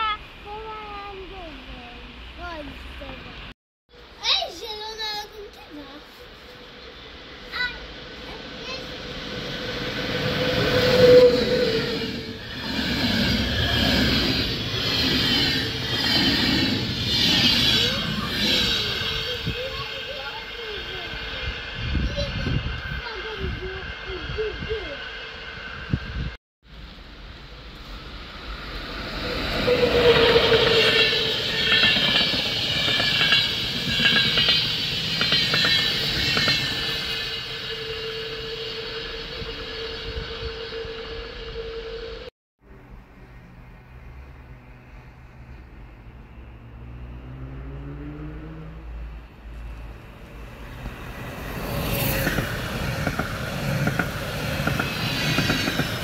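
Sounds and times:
trains passing with rail noise: 0:00.0 - 0:56.0
high whine of locomotive: 0:05.5 - 0:56.0.

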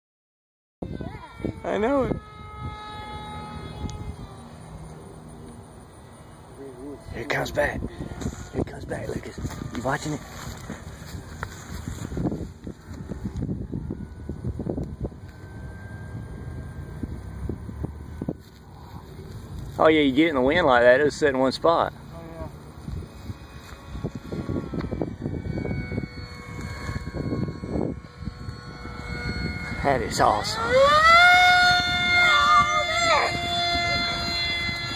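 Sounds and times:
model airplane droning: 0:00.8 - 0:34.9
wind buffeting microphone: 0:00.8 - 0:34.9.

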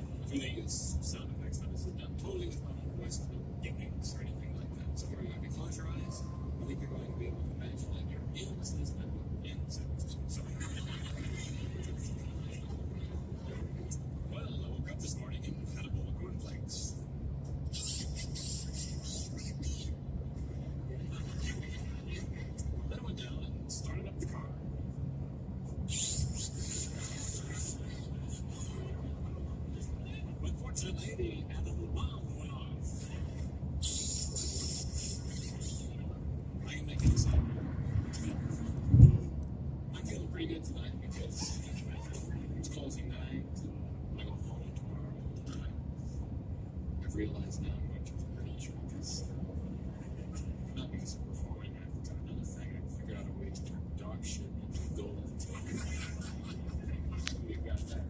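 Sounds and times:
car cabin road and engine noise: 0:00.0 - 0:58.0.

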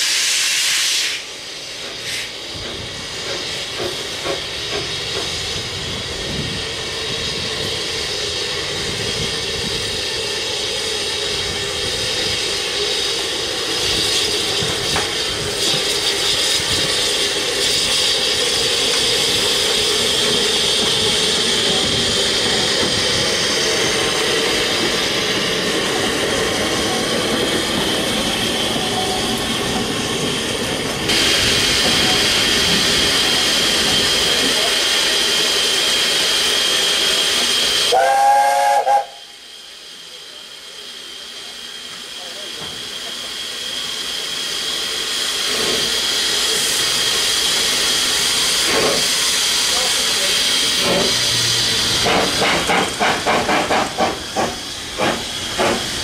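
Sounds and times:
steam hissing from locomotive: 0:00.0 - 0:56.0
steam whistle blast: 0:37.9 - 0:39.4.

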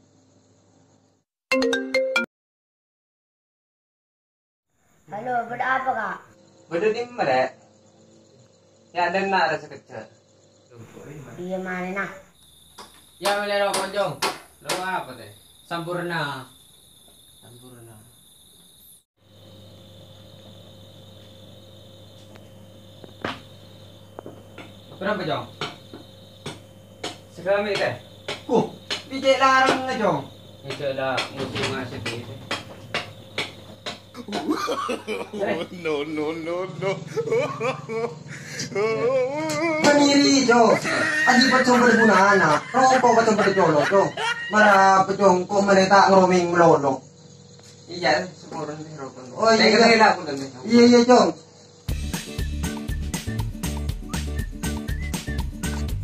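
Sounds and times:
crickets chirring: 0:00.0 - 0:01.3, 0:04.7 - 0:56.0
man talking: 0:35.0 - 0:37.1.

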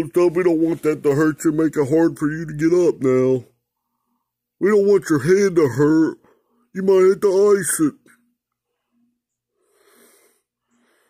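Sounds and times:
man breathing: 0:03.6 - 0:04.5, 0:08.6 - 0:11.0.

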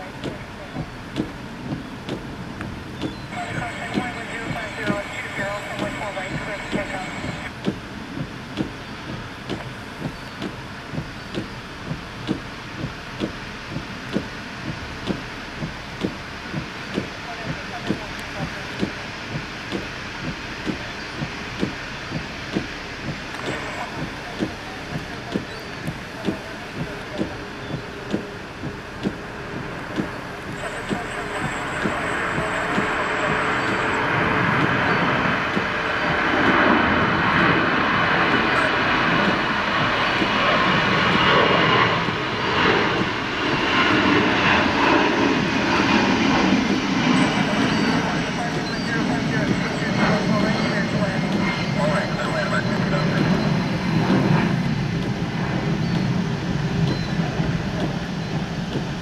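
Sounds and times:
jet engines running: 0:00.0 - 0:59.0.

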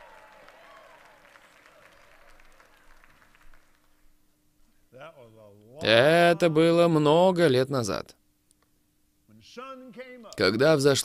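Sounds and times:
faint audience applause: 0:00.0 - 0:04.2.

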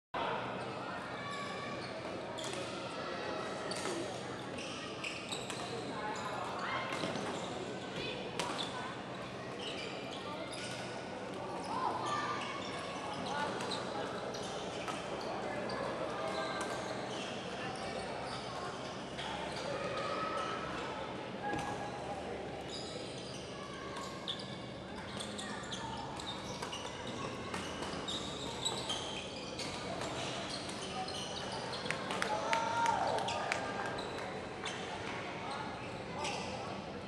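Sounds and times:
shoes squeaking on court: 0:22.7 - 0:32.0, 0:35.5 - 0:36.6.

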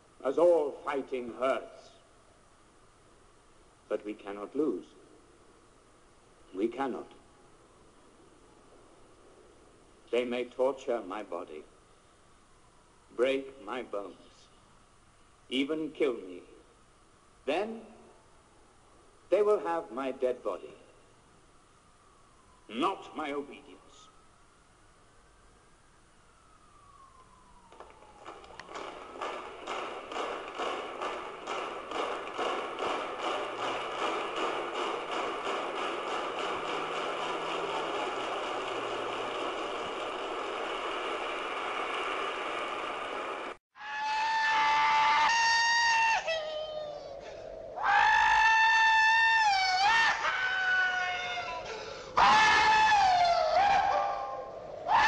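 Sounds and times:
crowd cheering and clapping: 0:27.7 - 0:46.2
man whooping: 0:43.8 - 0:55.0.

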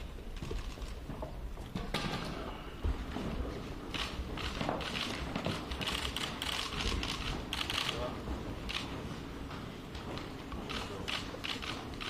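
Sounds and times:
camera shutters clicking: 0:03.9 - 0:08.1, 0:10.7 - 0:12.0.

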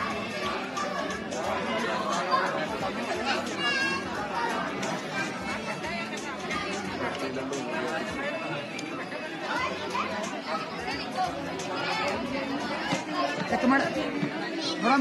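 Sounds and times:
crowd chattering: 0:00.0 - 0:15.0.

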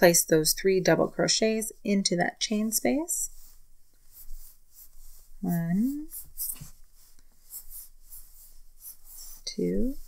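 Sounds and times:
yarn rustling over crochet hook: 0:00.8 - 0:10.0.

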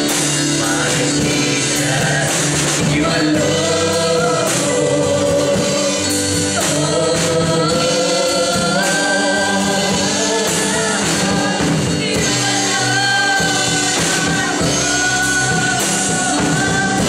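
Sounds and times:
man singing into microphone: 0:00.0 - 0:17.0
musical backing: 0:00.0 - 0:17.0
voices singing along: 0:00.0 - 0:17.0.

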